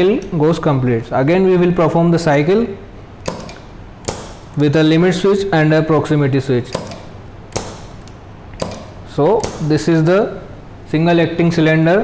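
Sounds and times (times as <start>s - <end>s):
solenoid valve clicks: 3.2s - 4.8s, 6.7s - 9.9s.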